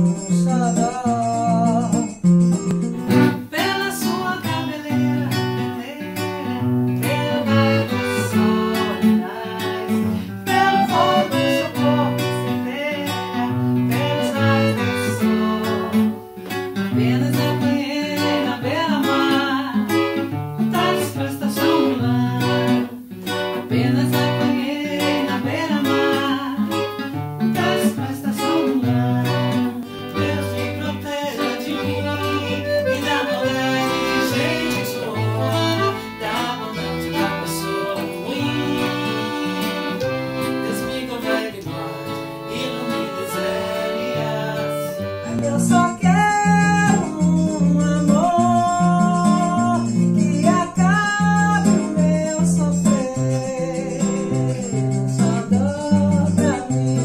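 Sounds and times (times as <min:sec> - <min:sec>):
woman singing: 0:00.0 - 0:02.2, 0:03.0 - 0:57.0
accordion: 0:00.0 - 0:57.0
acoustic guitar: 0:00.0 - 0:57.0.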